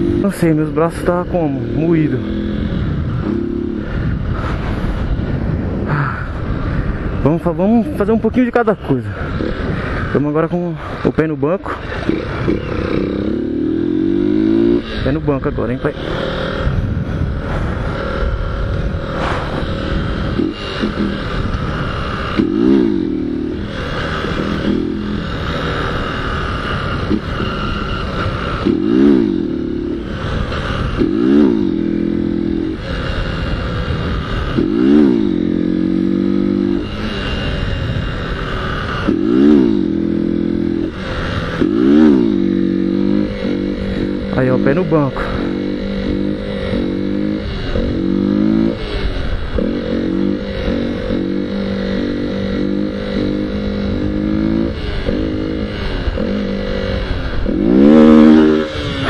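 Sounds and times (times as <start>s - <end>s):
motorcycle engine revving: 0.0s - 59.0s
wind on microphone: 1.2s - 11.1s, 15.9s - 59.0s.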